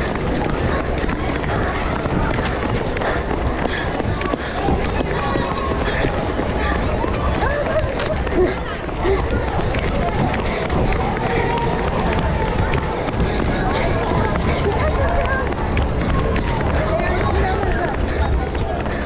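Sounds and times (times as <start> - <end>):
crowd voices and chatter: 0.0 - 19.0
low microphone rumble: 0.0 - 19.0
running footsteps on asphalt: 0.0 - 19.0.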